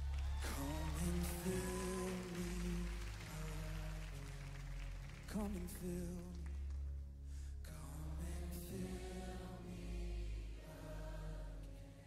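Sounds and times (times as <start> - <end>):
worship band music: 0.0 - 6.7
person singing: 0.2 - 4.4, 5.2 - 6.6.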